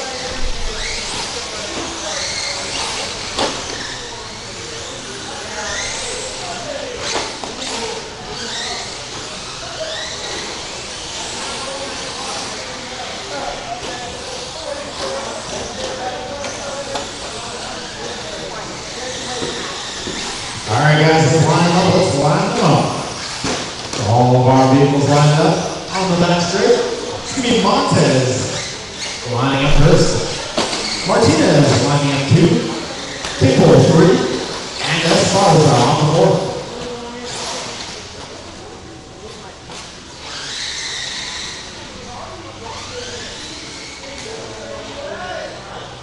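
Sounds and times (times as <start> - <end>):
electric toy trucks whining: 0.0 - 38.2, 39.8 - 44.7
murmur of distant voices: 0.0 - 46.0
man's voice: 20.6 - 23.1, 24.0 - 28.6, 29.2 - 32.8, 33.4 - 36.7.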